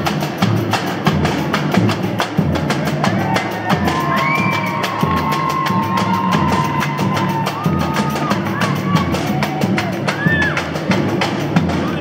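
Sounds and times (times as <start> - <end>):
deep surdo drum beats: 0.0 - 12.0
samba drum section: 0.0 - 12.0.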